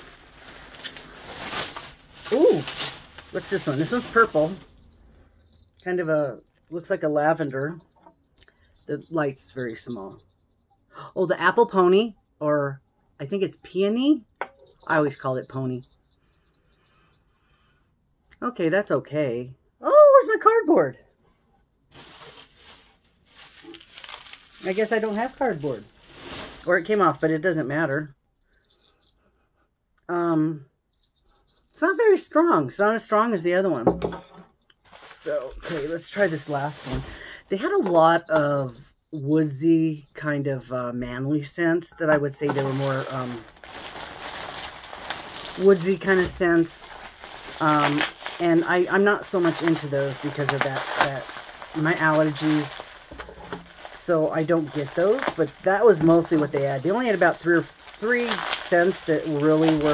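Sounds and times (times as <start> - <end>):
bubble wrap rustling and crinkling: 0.0 - 5.9, 21.9 - 27.6, 34.8 - 38.4, 42.4 - 59.9.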